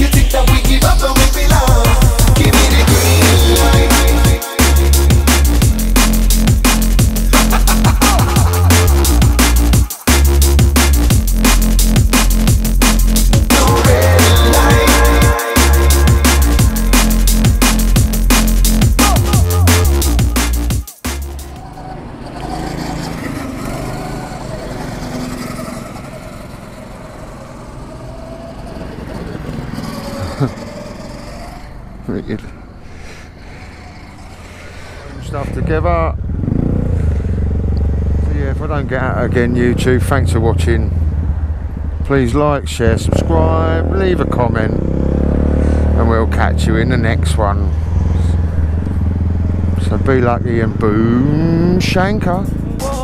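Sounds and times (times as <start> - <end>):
loud engine: 0.0 - 20.4, 21.2 - 53.0
go-kart engines racing: 21.5 - 53.0.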